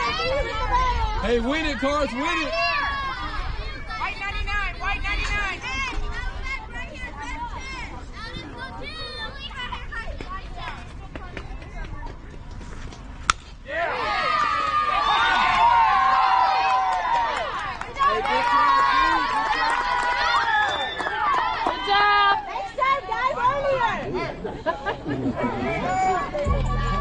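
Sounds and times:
crowd yelling and cheering: 0.0 - 7.9, 13.7 - 27.0
bat hitting ball crack: 13.2 - 13.6.

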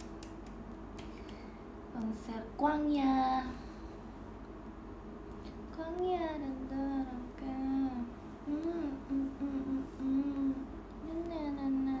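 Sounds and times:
woman humming: 6.7 - 12.0.

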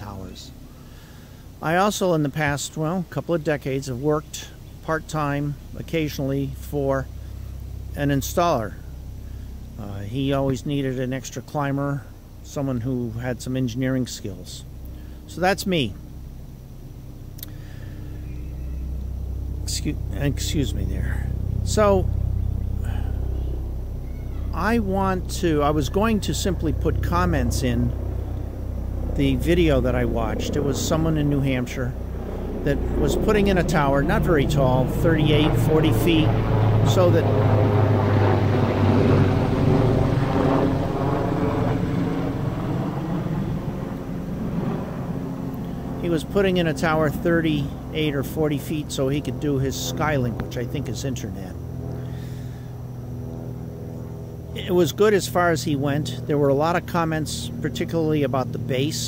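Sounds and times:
motor vehicle rumble: 0.0 - 59.0
passing engine droning: 0.0 - 59.0.

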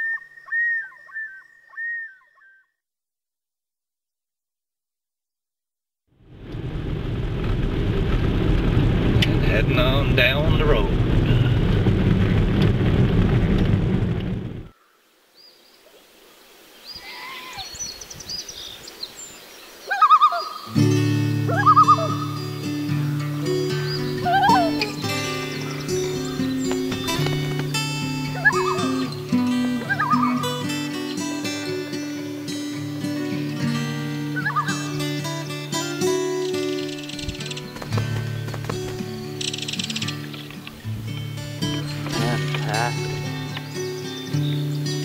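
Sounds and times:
loon calls: 0.0 - 2.7, 19.9 - 20.7, 21.5 - 22.4, 23.1 - 30.7, 34.3 - 35.0
road noise inside car: 6.2 - 14.6
background music low chord: 20.7 - 45.0.

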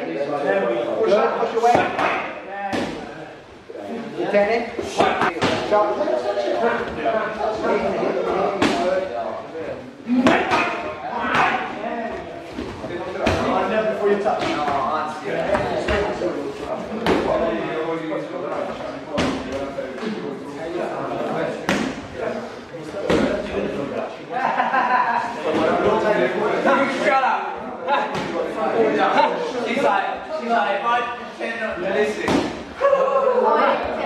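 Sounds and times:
people talking in echoing hall: 0.0 - 34.0.

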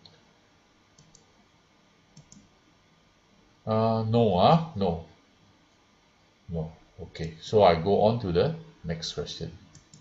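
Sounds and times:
computer mouse clicks: 1.0 - 1.3, 2.2 - 2.5, 9.7 - 10.0.

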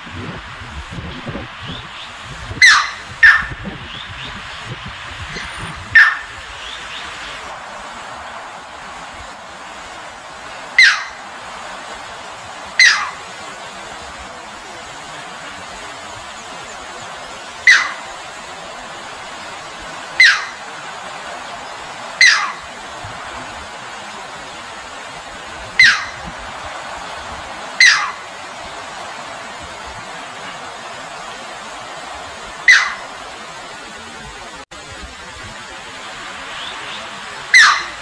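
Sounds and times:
stream rushing over rocks: 0.0 - 38.0
heron sharp calls: 2.6 - 3.6, 5.3 - 7.1, 10.8 - 11.2, 12.8 - 13.2, 17.6 - 18.1, 20.2 - 20.6, 22.2 - 22.7, 25.8 - 26.3, 27.8 - 28.3, 32.6 - 33.1, 37.5 - 38.0.

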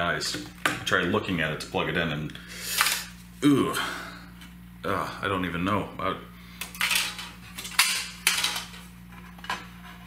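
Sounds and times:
steady low hum: 0.0 - 10.0
hard plastic parts clinking: 6.6 - 9.6.

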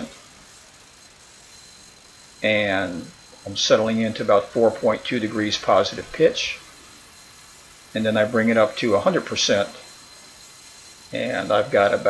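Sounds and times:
background hiss: 0.0 - 12.0
thin high-pitched tone: 0.0 - 12.0.

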